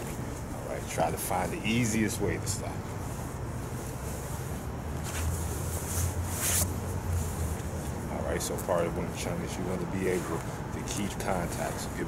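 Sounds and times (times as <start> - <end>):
jacket sleeves rustling: 0.0 - 12.0
steady low rumble: 0.0 - 12.0.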